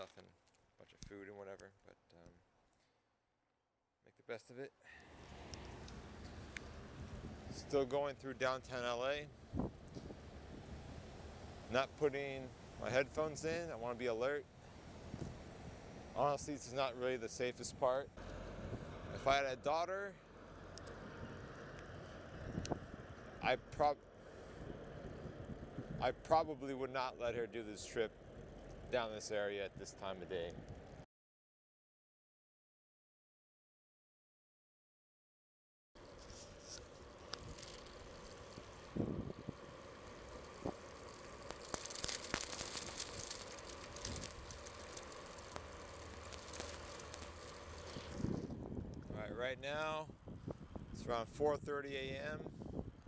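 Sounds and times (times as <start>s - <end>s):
faint hiss: 4.8s - 19.3s, 36.0s - 48.4s
bicycle tyre noise: 4.9s - 19.6s, 21.9s - 31.0s, 36.0s - 49.1s
wind rumble on microphone: 5.8s - 13.7s, 14.9s - 16.9s, 22.2s - 26.6s, 36.2s - 53.0s
bike rattling and clicking: 36.3s - 48.4s.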